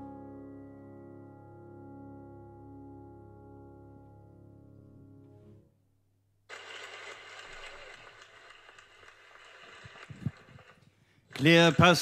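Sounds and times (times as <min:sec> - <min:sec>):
audience applause: 0:06.5 - 0:12.0.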